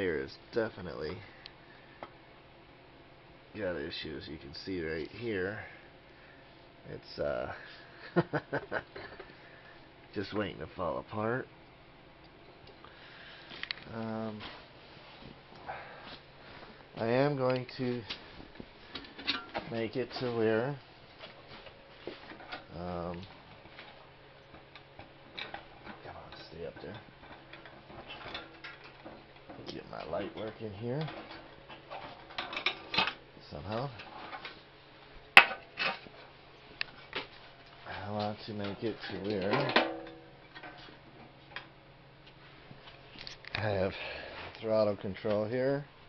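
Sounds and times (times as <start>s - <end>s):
faint steady hum: 0.0s - 46.0s
light scattered clicks and knocks: 21.6s - 34.6s, 35.4s - 43.7s.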